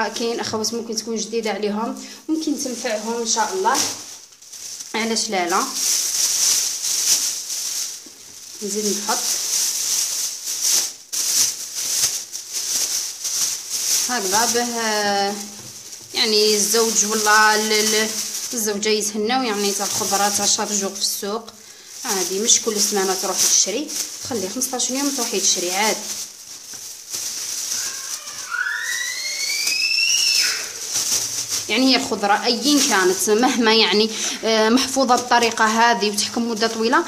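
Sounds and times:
plastic bag rustling: 0.0 - 37.0.

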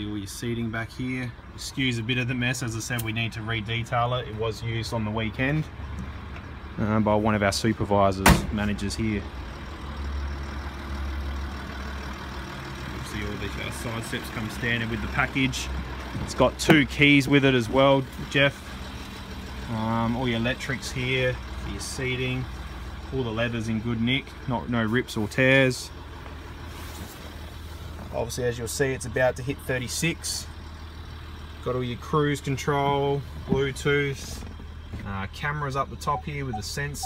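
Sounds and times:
car engine idling: 0.0 - 37.0.

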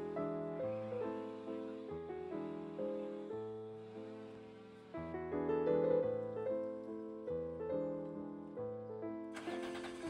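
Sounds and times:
solo piano waltz: 0.0 - 9.6.

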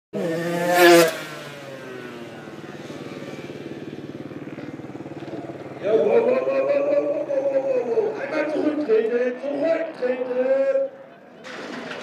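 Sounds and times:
motorcycle engine revving: 0.1 - 10.4.

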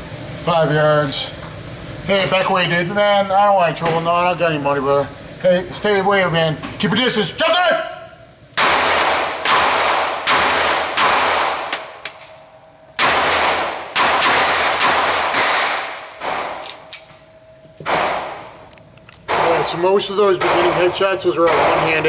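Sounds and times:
pistol shots echoing indoors: 8.6 - 18.7, 20.4 - 22.0.

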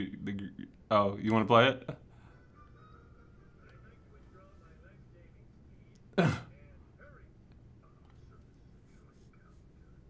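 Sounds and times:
person clearing throat: 6.2 - 6.5.

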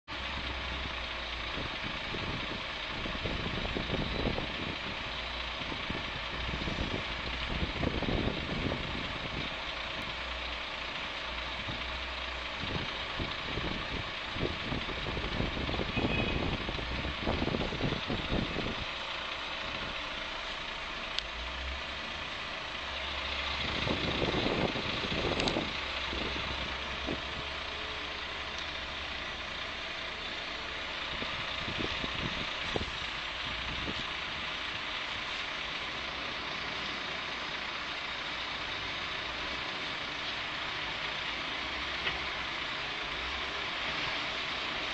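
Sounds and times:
diesel truck engine idling: 0.1 - 44.9.

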